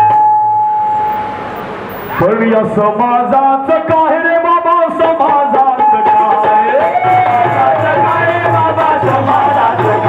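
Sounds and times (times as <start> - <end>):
tabla: 3.6 - 10.0.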